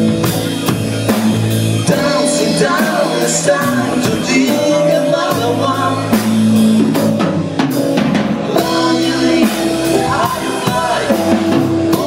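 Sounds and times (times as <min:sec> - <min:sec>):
bass guitar: 0:00.0 - 0:12.0
drum kit: 0:00.0 - 0:12.0
electric guitar: 0:00.0 - 0:12.0
keyboards: 0:00.0 - 0:12.0.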